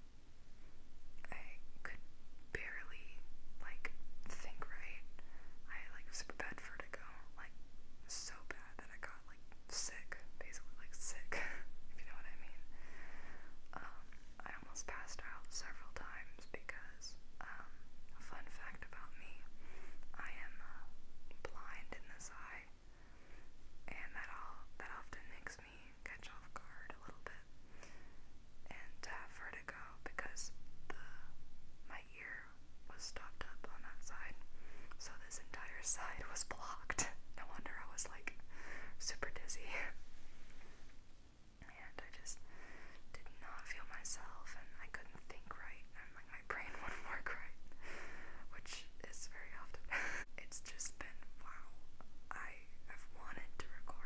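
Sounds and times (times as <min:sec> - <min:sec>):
woman whispering: 0:01.2 - 0:12.7, 0:13.7 - 0:19.5, 0:20.1 - 0:22.7, 0:23.9 - 0:27.5, 0:28.6 - 0:34.4, 0:35.0 - 0:38.4, 0:39.0 - 0:40.0, 0:41.6 - 0:42.4, 0:43.1 - 0:47.6, 0:48.5 - 0:54.0.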